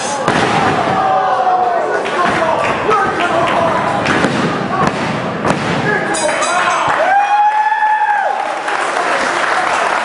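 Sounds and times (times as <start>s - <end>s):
crowd shouting: 0.0s - 3.9s.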